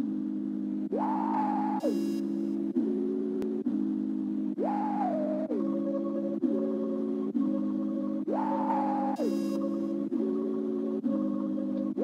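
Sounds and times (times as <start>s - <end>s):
sustained synthesizer chords: 0.0s - 12.0s.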